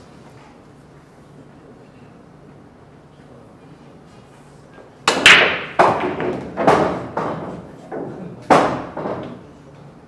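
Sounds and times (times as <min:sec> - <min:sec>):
cue tip striking cue ball: 0:05.1 - 0:09.4
pool balls cracking into rack: 0:05.1 - 0:09.4
pool balls knocking: 0:05.1 - 0:09.4.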